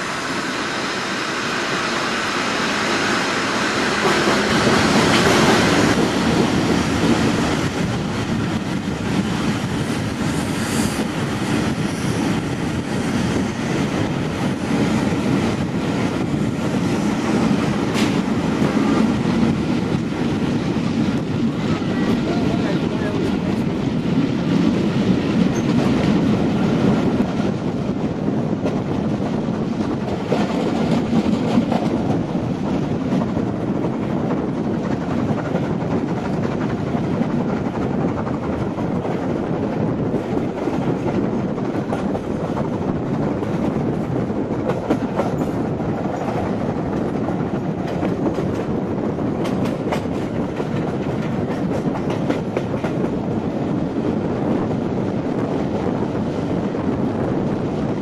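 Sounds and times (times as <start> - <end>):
train wheels clattering over rail joints: 3.9 - 53.6.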